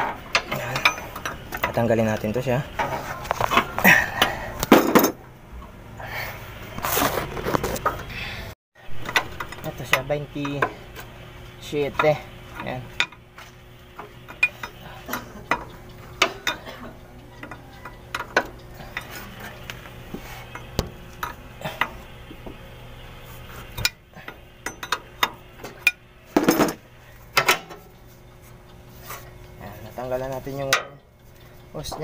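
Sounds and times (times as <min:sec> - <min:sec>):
wrench clinking on metal fitting: 0:00.3 - 0:02.0, 0:24.6 - 0:26.7.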